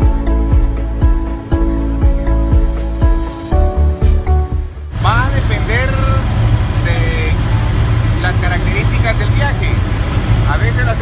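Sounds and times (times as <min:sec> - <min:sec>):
music: 0:00.0 - 0:11.0
helicopter cabin drone: 0:04.6 - 0:11.0
man talking: 0:04.9 - 0:11.0.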